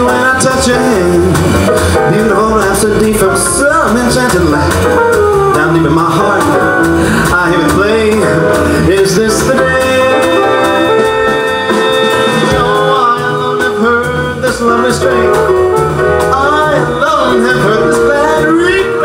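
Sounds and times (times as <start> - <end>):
jazz combo playing: 0.0 - 19.0
man singing: 0.0 - 19.0.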